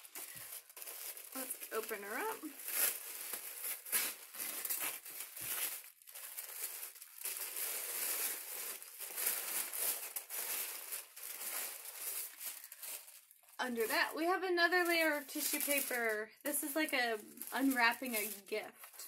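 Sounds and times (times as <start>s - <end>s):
wrapping paper tearing and crinkling: 0.0s - 19.0s.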